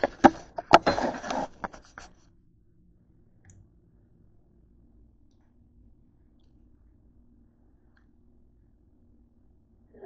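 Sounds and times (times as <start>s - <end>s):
scraping and rustling on counter: 0.0s - 2.2s.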